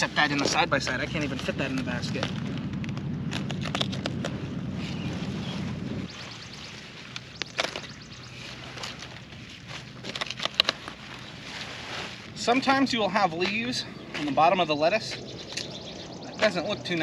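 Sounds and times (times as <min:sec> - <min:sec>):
low rumble: 0:00.0 - 0:17.0
lettuce leaves snapping and rustling: 0:00.3 - 0:05.0, 0:07.0 - 0:12.3.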